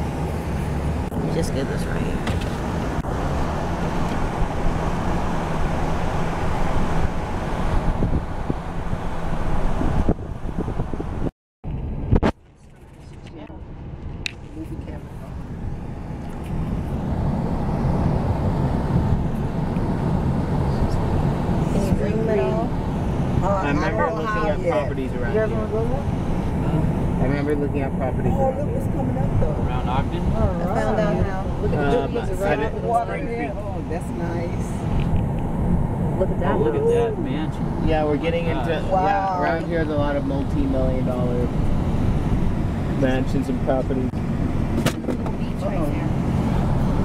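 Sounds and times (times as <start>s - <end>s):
car road noise rumble: 0.0s - 47.0s
voices: 1.2s - 2.4s, 20.6s - 35.0s, 36.0s - 41.9s, 45.2s - 46.5s.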